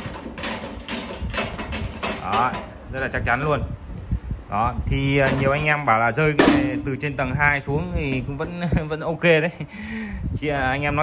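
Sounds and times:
metal toolbox scraping and rattling: 0:00.0 - 0:02.7.

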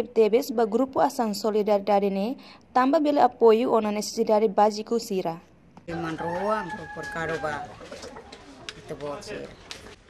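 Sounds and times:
rooster crowing: 0:05.9 - 0:08.6.

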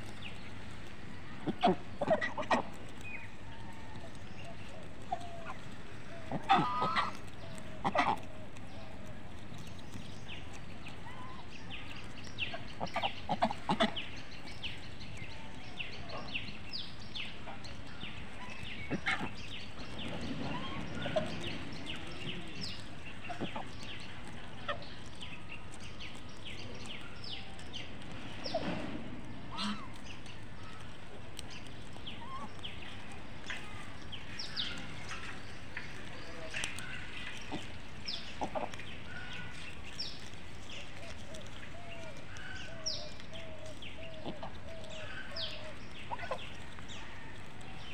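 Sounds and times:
birds chirping: 0:00.0 - 0:47.9.

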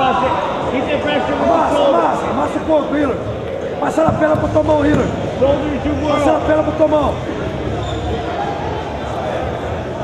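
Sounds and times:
crowd murmur echoing in hall: 0:00.0 - 0:10.0.

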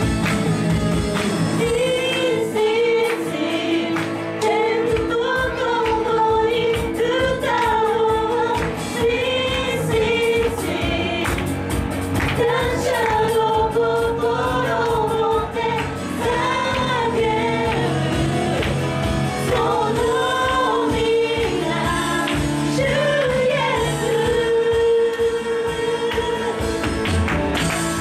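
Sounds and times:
live band with guitar and keyboard: 0:00.0 - 0:28.0
woman singing into microphone: 0:01.6 - 0:11.5, 0:12.3 - 0:18.8, 0:19.4 - 0:26.8.

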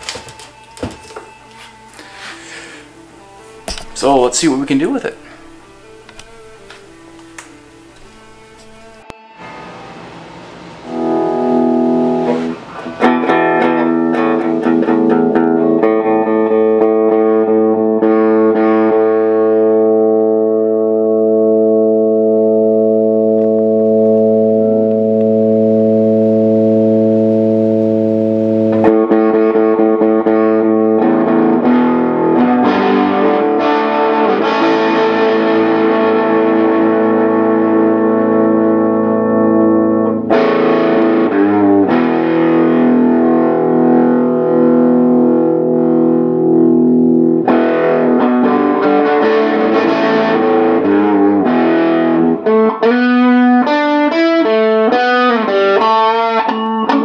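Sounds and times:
distorted electric guitar: 0:00.0 - 0:57.0.

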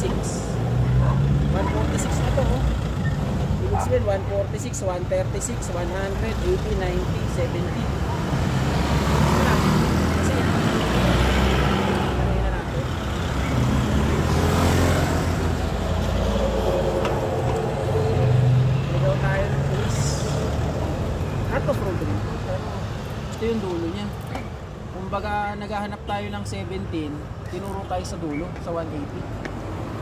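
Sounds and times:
motorcycles passing: 0:00.0 - 0:24.7
cars passing close by: 0:00.0 - 0:30.0.

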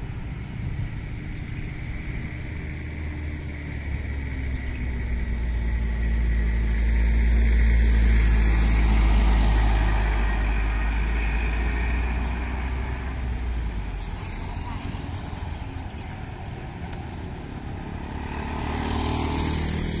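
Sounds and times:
car passing: 0:00.0 - 0:20.0
motorcycles passing: 0:00.0 - 0:20.0
suv engine driving off: 0:00.0 - 0:20.0.

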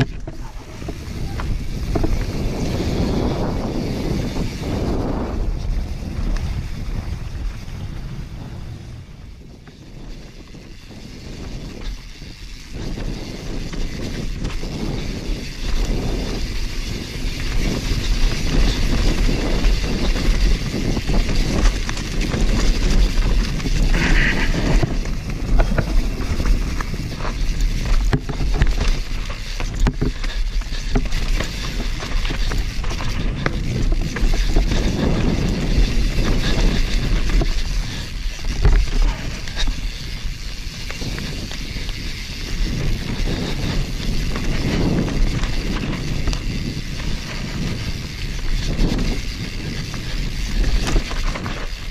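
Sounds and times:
bike knocking and rattling: 0:00.0 - 0:51.9
bike tyres rolling over dirt: 0:00.0 - 0:51.9
wind on microphone: 0:00.0 - 0:51.9.

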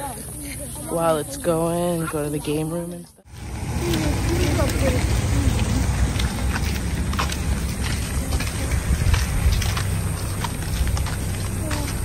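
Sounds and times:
footsteps: 0:03.2 - 0:12.0
wind rumble: 0:03.3 - 0:12.0.

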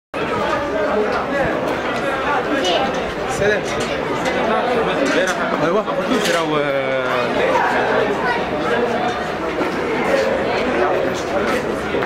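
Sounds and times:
men talking over one another: 0:00.2 - 0:12.0.

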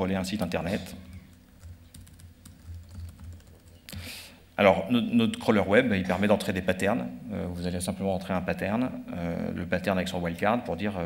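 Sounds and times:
low steady hum: 0:00.0 - 0:11.0
keyboard typing: 0:00.3 - 0:04.0.

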